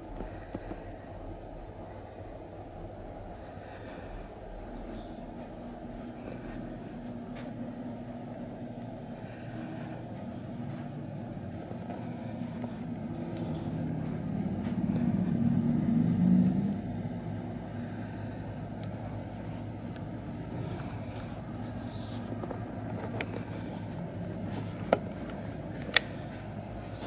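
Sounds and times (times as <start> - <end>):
low mechanical hum: 0.0 - 27.0.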